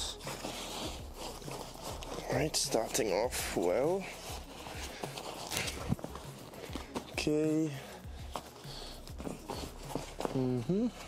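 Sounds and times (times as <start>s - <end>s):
gloves rustling into fabric bag: 0.0s - 11.0s.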